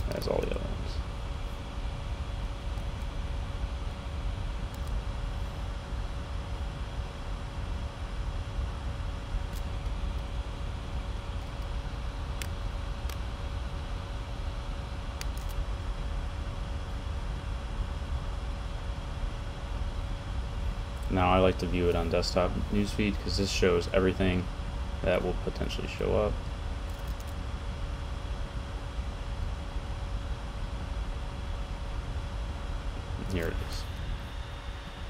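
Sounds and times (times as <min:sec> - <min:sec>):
faint constant hum: 0:00.0 - 0:35.0.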